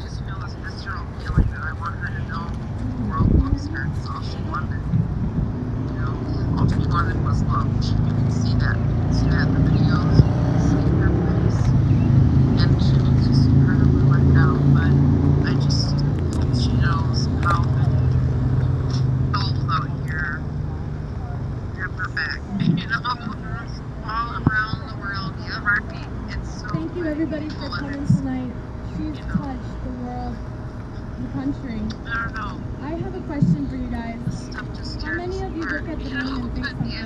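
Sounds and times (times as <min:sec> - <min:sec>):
faint voices: 0:00.0 - 0:37.0
low engine rumble: 0:00.0 - 0:37.0.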